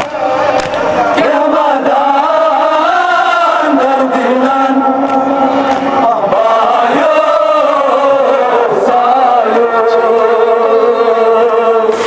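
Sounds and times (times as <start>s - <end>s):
men chanting a lament: 0.1s - 12.0s.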